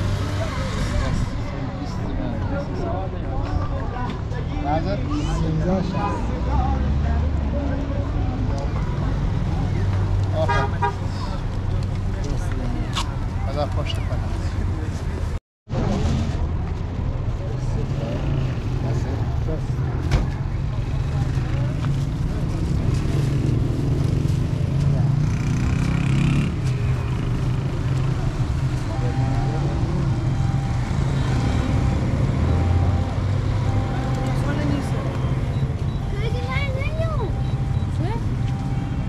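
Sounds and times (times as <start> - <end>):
vehicle engine rumbling: 0.0 - 39.0
people talking: 28.0 - 38.8.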